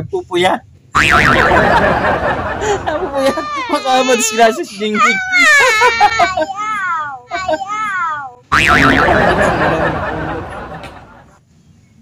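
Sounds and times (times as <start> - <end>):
girl laughing and squealing: 2.6 - 7.9.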